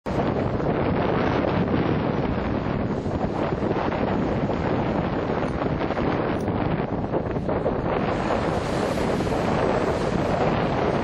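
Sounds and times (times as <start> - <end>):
wind buffeting microphone: 0.0 - 11.0
surf breaking: 0.1 - 11.0.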